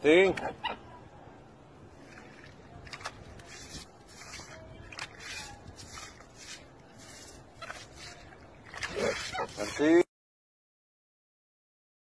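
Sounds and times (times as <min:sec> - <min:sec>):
brush scrubbing wet cloth: 0:02.0 - 0:10.1.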